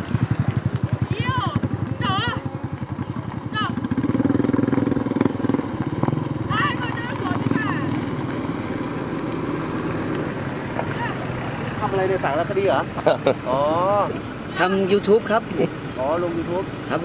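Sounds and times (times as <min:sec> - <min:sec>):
small engine puttering: 0:00.0 - 0:17.0.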